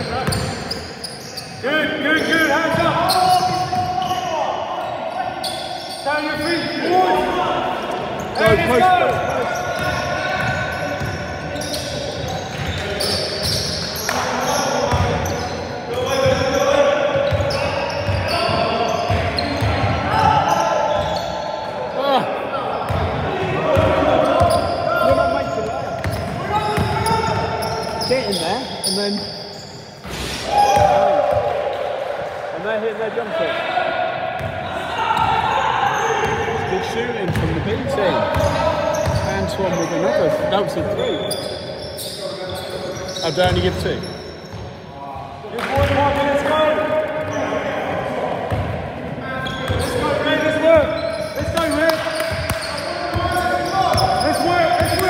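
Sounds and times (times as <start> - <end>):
players shouting: 1.8 - 11.9, 14.0 - 21.3, 30.4 - 32.5, 33.2 - 37.0.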